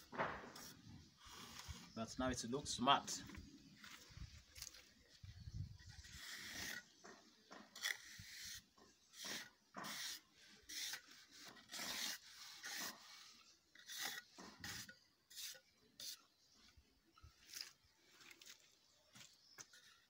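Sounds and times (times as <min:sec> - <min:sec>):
trowel scraping wet cement: 0:05.9 - 0:07.0, 0:07.6 - 0:16.3.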